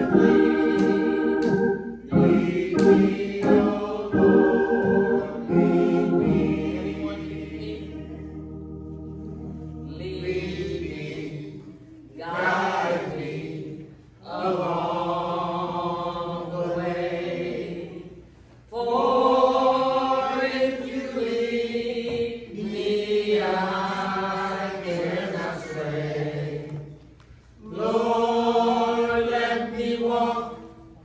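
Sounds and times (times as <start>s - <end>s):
congregation singing a hymn: 0.0s - 31.0s.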